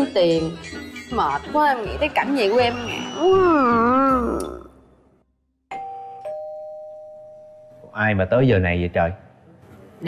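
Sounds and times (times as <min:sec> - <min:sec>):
doorbell chime ding-dong: 0:05.7 - 0:08.0.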